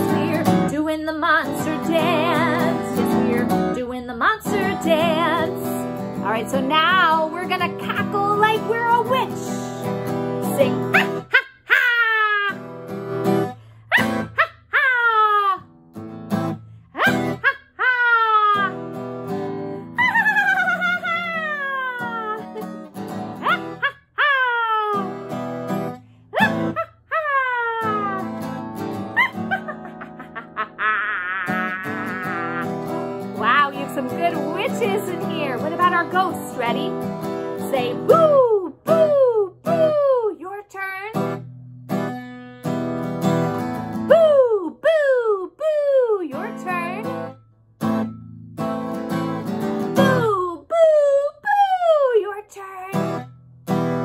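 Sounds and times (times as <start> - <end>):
strummed acoustic guitar: 0.0 - 11.3, 12.5 - 14.4, 15.7 - 17.4, 18.6 - 20.0, 20.7 - 23.8, 24.9 - 26.8, 27.8 - 30.8, 31.4 - 40.0, 41.1 - 44.2, 46.3 - 50.4, 52.9 - 54.0
woman cackling: 10.6 - 12.7, 13.9 - 15.7, 17.0 - 18.8, 19.8 - 25.2, 26.3 - 33.5, 44.1 - 46.4, 50.0 - 52.1.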